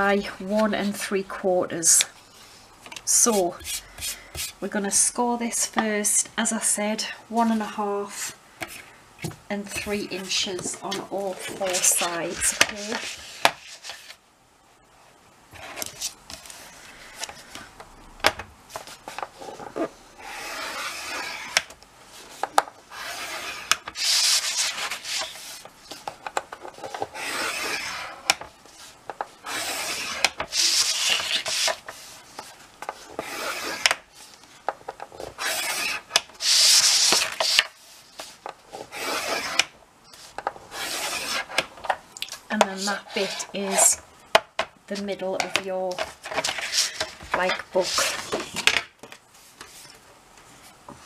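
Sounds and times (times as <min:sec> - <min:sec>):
scoring tool drawn along board: 0:10.8 - 0:14.1, 0:19.4 - 0:21.6, 0:22.9 - 0:25.6, 0:26.8 - 0:34.0, 0:35.2 - 0:39.7, 0:40.7 - 0:41.6, 0:42.7 - 0:44.0, 0:46.4 - 0:48.4.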